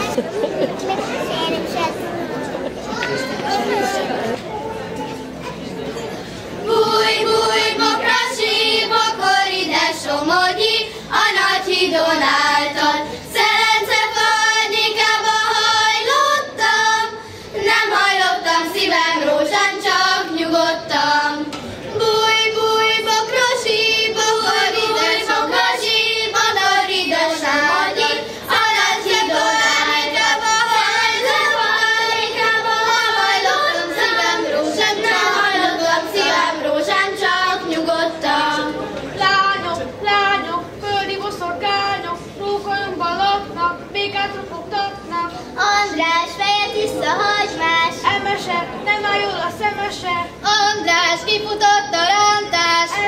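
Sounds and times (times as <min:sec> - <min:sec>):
girls singing folk song: 0:06.3 - 0:53.0.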